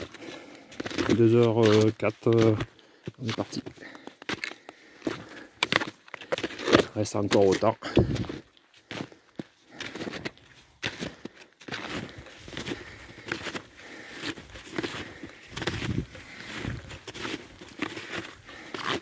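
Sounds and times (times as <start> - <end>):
snowshoes crunching in snow: 0.0 - 19.0.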